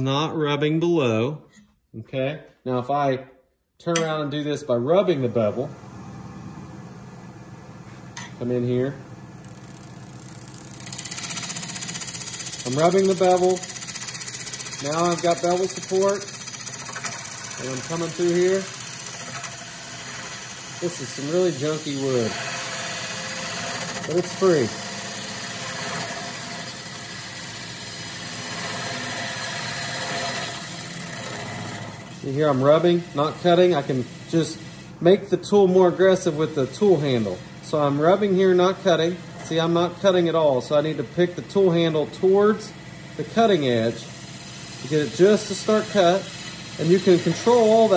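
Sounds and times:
wood lathe cutting wood: 8.4 - 35.0, 35.6 - 47.9
gouge scraping spinning wood: 9.5 - 34.9, 43.2 - 47.9.

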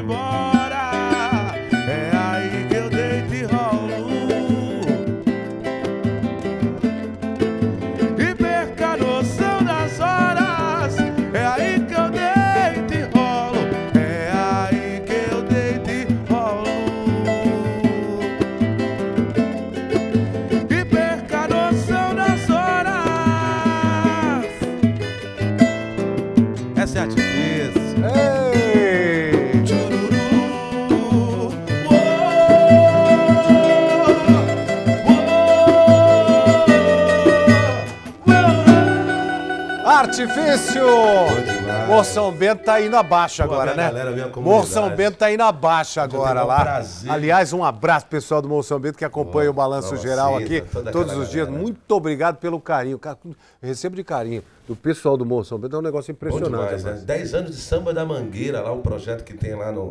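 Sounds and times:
man singing: 0.0 - 5.5, 8.0 - 19.6, 20.4 - 24.9, 26.8 - 45.2
acoustic guitar strummed: 0.0 - 45.0
percussion beat: 0.0 - 45.2, 46.2 - 47.6, 56.3 - 56.8
tambourine rhythm: 3.7 - 42.3.

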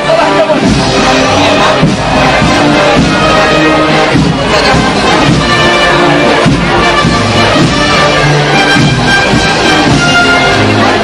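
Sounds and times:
brass band playing a march: 0.0 - 11.0.

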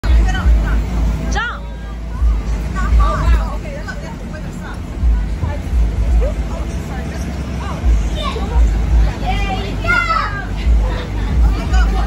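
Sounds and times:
children chattering and calling: 0.0 - 12.0
heavy low rumble: 0.0 - 12.0.

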